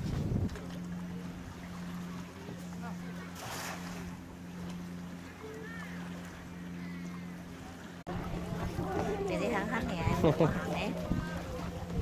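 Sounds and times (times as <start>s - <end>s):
boat engine humming: 0.0s - 12.0s.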